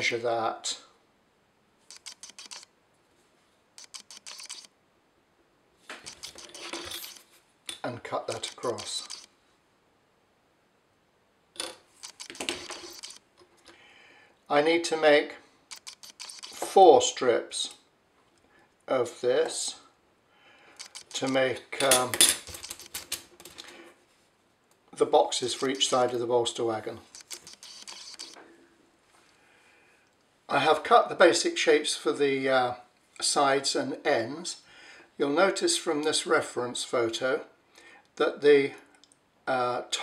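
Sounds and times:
small tools clicking and tapping: 1.9 - 2.7, 3.8 - 4.7, 5.9 - 9.3, 11.6 - 13.8, 15.7 - 16.7, 20.8 - 23.7, 27.0 - 28.4.

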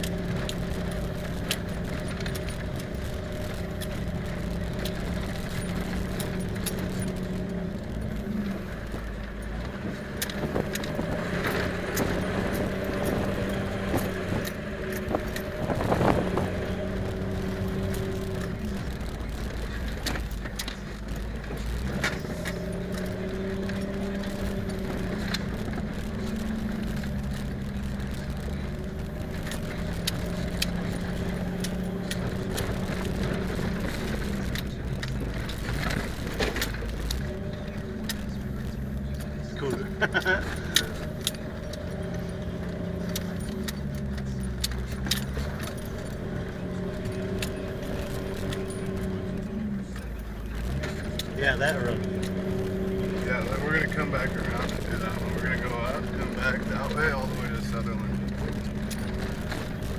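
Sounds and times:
rattles and knocks from body: 0.0 - 39.6
vehicle engine while driving: 0.0 - 59.9.

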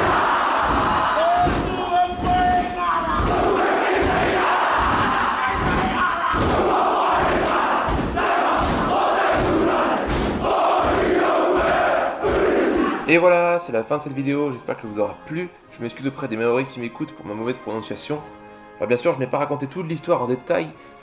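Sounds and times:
group shouting a chant: 0.0 - 13.1
rhythmic stamping thuds: 0.0 - 13.1.

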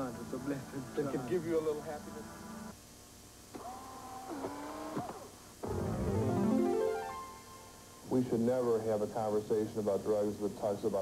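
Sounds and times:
bending synthesizer tones: 5.6 - 7.7
synthesizer music burst: 5.6 - 8.0.

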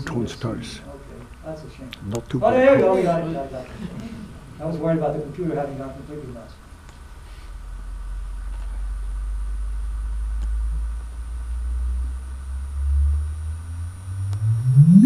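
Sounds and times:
low hum rising into chirp: 8.2 - 15.0.

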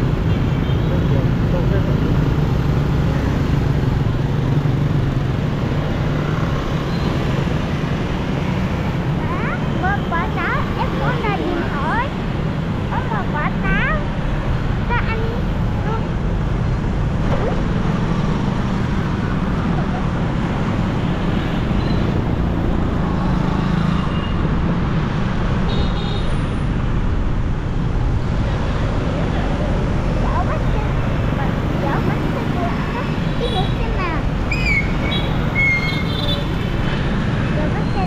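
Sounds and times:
motorbike and car traffic rumble: 0.0 - 38.0.

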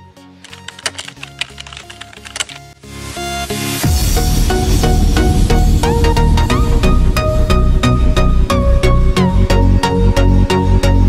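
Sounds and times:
soft background music: 0.0 - 11.0
computer keyboard typing: 0.4 - 2.7.

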